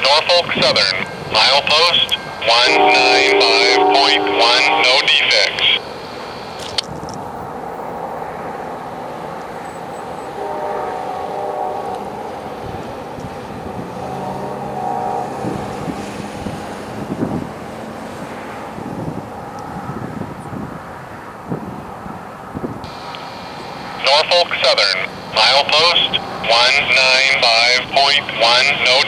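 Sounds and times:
freight train wheels rumbling: 0:00.0 - 0:29.0.

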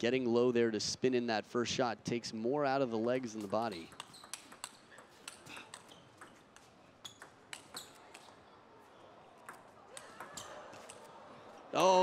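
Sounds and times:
table tennis ball clicking: 0:03.4 - 0:08.3.

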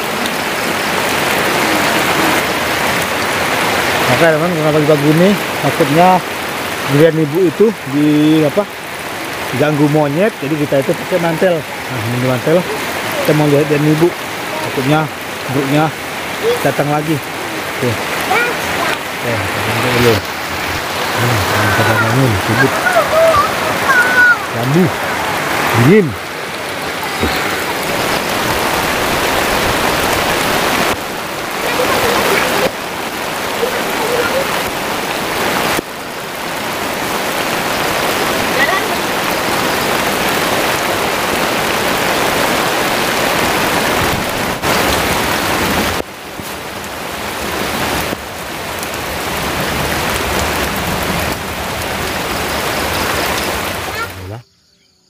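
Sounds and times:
heavy rain falling: 0:00.0 - 0:54.4.

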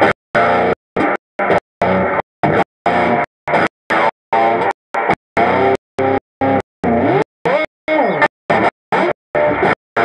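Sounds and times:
electric guitar with echo: 0:00.0 - 0:10.0.

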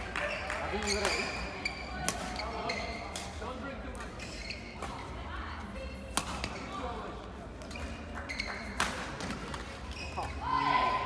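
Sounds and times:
shoes squeaking on court: 0:00.2 - 0:03.3, 0:04.0 - 0:05.2, 0:07.6 - 0:10.4
racket hitting shuttlecock: 0:06.1 - 0:06.6.

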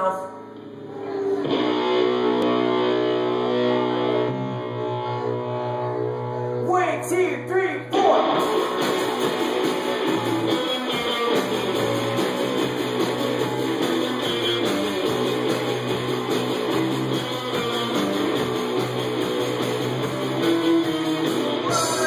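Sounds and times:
punk rock band playing: 0:01.5 - 0:06.1, 0:07.9 - 0:22.0.

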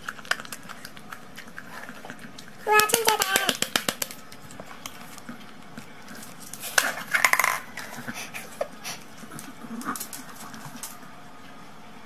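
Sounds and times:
paper cup rattling on hard floor: 0:02.7 - 0:04.2, 0:06.1 - 0:08.1.

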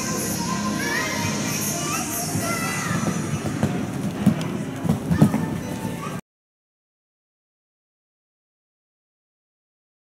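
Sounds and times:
background music: 0:00.0 - 0:06.2.

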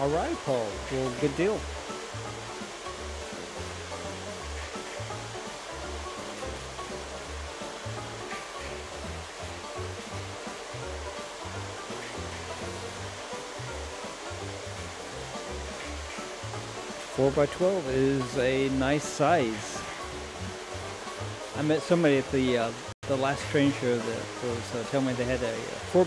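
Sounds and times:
background music with bass line: 0:00.0 - 0:26.0.

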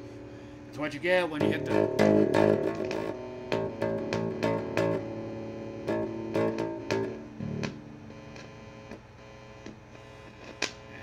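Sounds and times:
bass amp electrical hum: 0:00.0 - 0:11.0.

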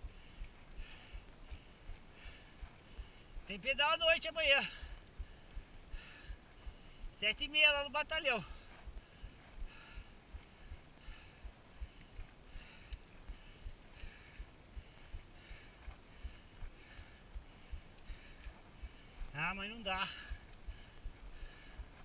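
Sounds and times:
faint steady hiss: 0:00.0 - 0:22.0.

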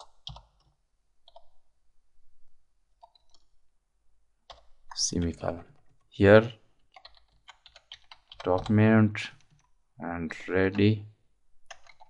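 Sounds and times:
computer keyboard keystrokes: 0:00.0 - 0:00.7, 0:03.0 - 0:03.5, 0:06.9 - 0:08.7, 0:11.7 - 0:12.0.

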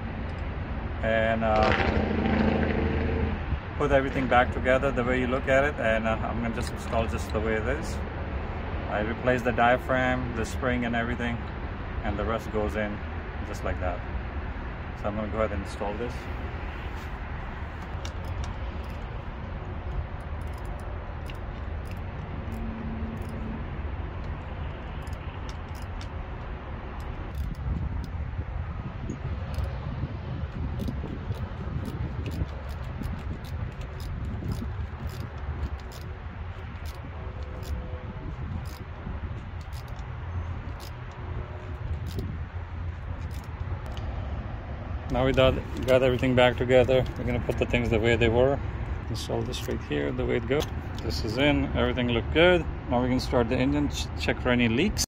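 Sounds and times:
steady low rumble: 0:00.0 - 0:55.0.

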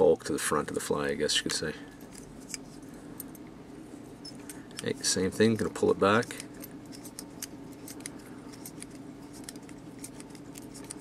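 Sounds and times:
quiet room hum: 0:00.0 - 0:11.0.

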